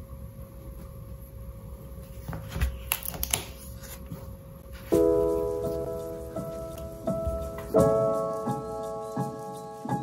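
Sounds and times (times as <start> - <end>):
paper rustling: 2.0 - 6.0
calm background music: 4.8 - 10.0.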